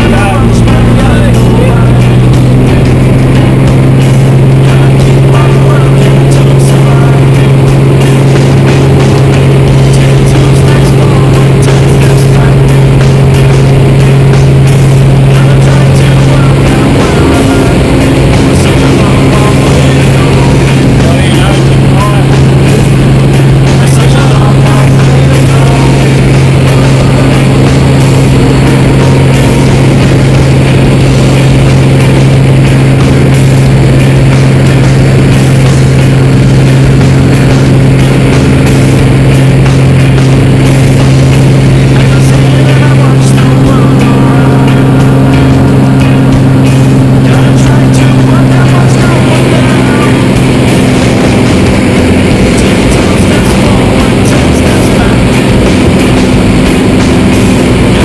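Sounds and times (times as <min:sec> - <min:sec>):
light aircraft engine and propeller: 0:00.0 - 0:58.0.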